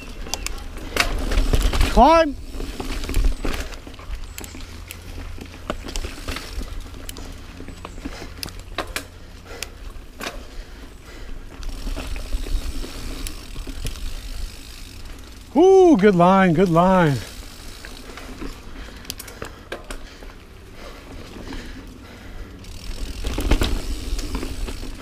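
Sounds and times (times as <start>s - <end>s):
bike rattling over rough ground: 0.0s - 25.0s
tyres rumbling: 0.0s - 25.0s
person shouting: 15.5s - 17.2s.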